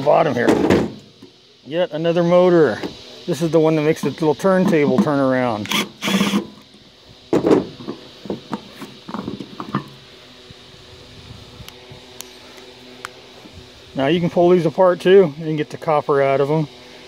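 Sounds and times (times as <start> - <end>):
cordless drill running: 5.6 - 6.7.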